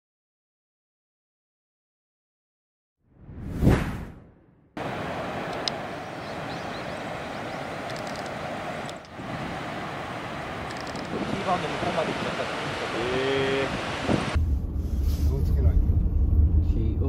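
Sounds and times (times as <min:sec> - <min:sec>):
whoosh: 0:03.2 - 0:04.5
ocean waves breaking: 0:04.8 - 0:14.4.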